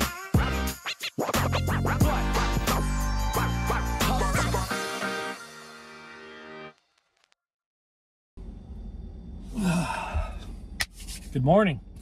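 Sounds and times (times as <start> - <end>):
man sighing: 9.5 - 10.5.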